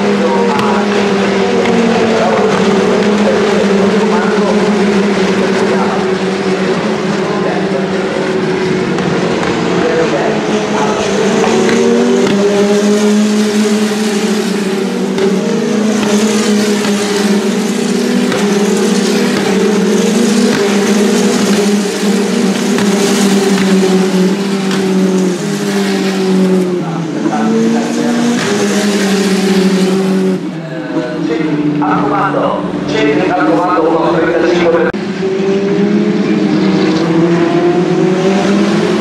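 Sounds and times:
race car engines at high revs: 0.0 - 39.0.

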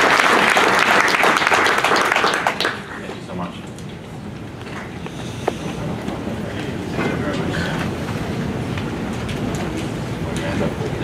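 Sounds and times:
murmur of voices: 2.5 - 11.0.

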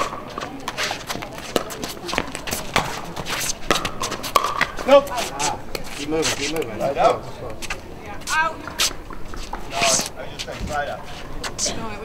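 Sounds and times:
players' voices: 0.0 - 12.0
shoe scuffs: 7.6 - 11.7.

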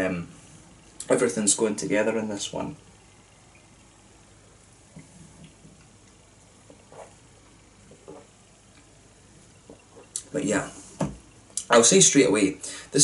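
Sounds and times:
person sipping and swallowing: 4.9 - 8.9.

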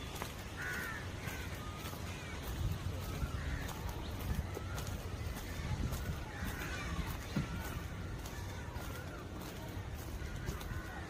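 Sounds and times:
footsteps on paved path: 0.0 - 11.0.

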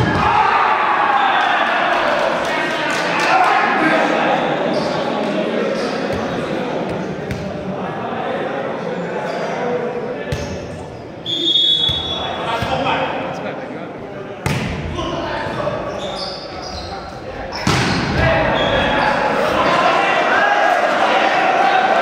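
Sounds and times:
players and spectators voices: 0.0 - 22.0
volleyball hits: 14.4 - 15.0, 17.6 - 18.4.

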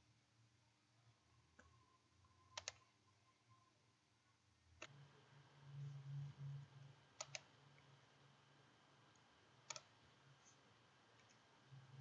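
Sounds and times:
faint low hum: 0.0 - 12.0
computer mouse clicks: 2.5 - 2.9, 4.8 - 5.0, 7.2 - 7.9, 9.1 - 11.6.

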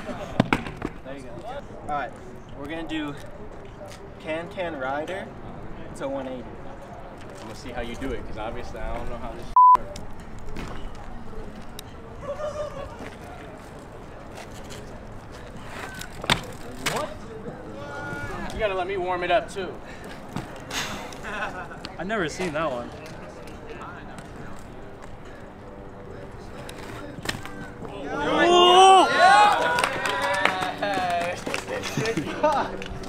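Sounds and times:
faint background chatter: 0.0 - 33.0
bike rolling over concrete: 7.1 - 33.0.

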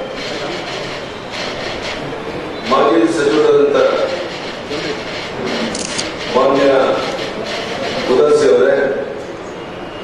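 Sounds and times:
man speaking into a microphone: 2.7 - 4.9, 6.3 - 7.2, 8.1 - 9.2.

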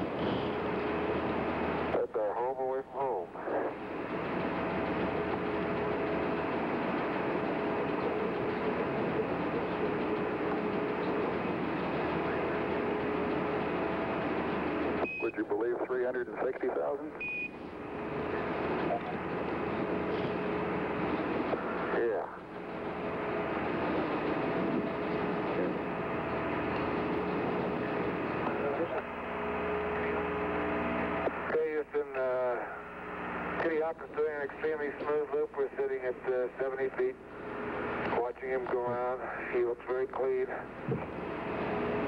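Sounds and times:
radio static hiss: 0.0 - 4.5, 5.1 - 41.9
faint hum tones: 0.0 - 42.0
voices over radio: 1.9 - 3.9, 15.1 - 17.3, 21.5 - 22.5, 29.9 - 37.3, 38.0 - 40.8.

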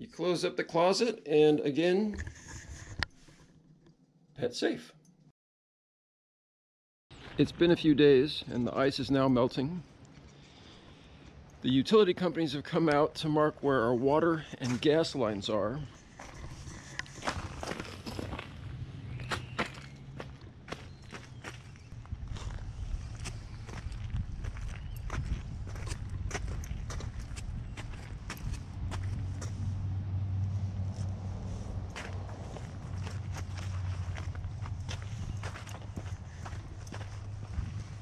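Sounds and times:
footsteps crunching on icy asphalt: 16.0 - 29.8, 30.5 - 38.0.

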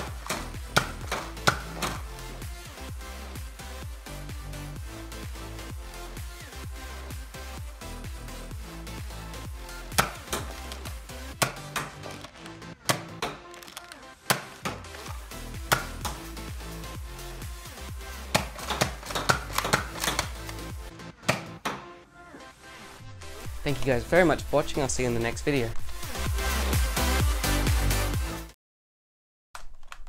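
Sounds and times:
electronic music with steady beat: 0.0 - 28.5
toy blaster plastic snaps: 10.0 - 14.5.

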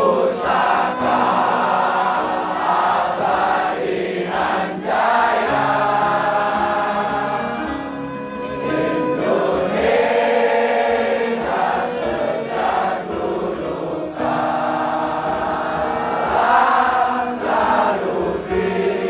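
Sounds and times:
choir singing slow song: 0.0 - 19.0.

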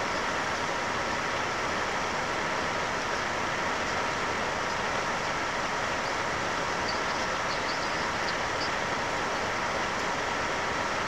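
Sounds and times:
recording hiss: 0.0 - 11.0.

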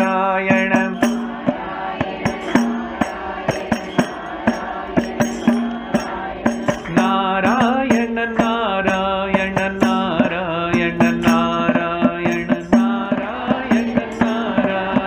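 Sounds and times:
man singing a devotional chant: 0.0 - 1.6, 2.2 - 15.0
hand-struck percussion: 0.0 - 15.0.

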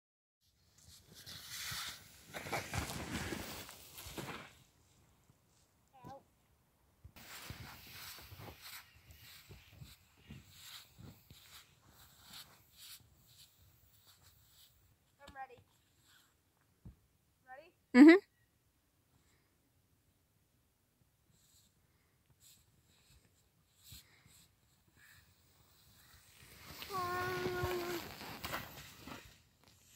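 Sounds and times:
footsteps crunching in snow: 1.2 - 4.6, 7.2 - 13.5, 26.0 - 29.2
snow tube sliding on snow: 1.2 - 4.7, 7.2 - 12.2, 25.9 - 29.4.

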